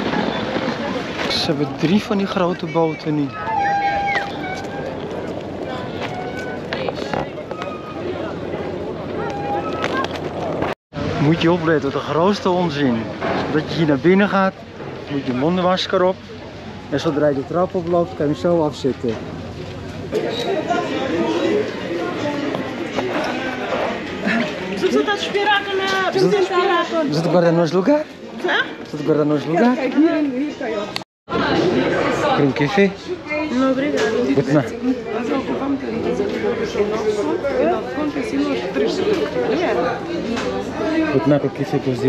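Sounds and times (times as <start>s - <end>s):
chatter of passengers: 0.0s - 42.0s
scattered voices: 0.0s - 42.0s
steady outdoor rush: 0.0s - 42.0s
music: 3.3s - 5.0s.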